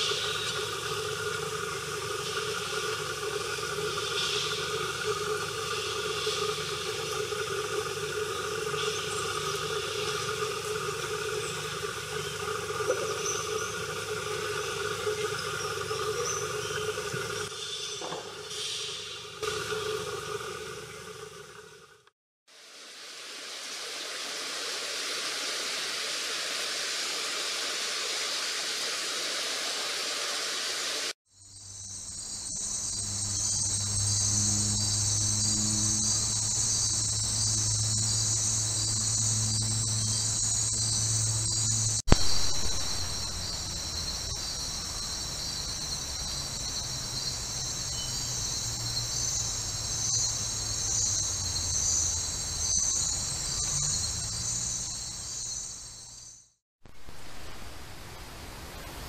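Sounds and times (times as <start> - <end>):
night insect chorus trilling: 0.0 - 21.9, 23.4 - 56.6
low hum: 32.2 - 45.0.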